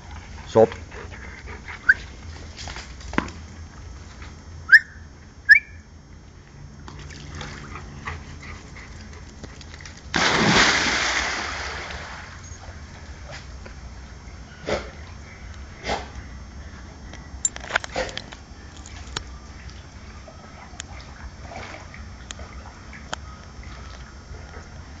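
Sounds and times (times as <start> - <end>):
rising whistle-like chirps: 4.7 - 5.9
dog splashing into pool: 9.8 - 12.4.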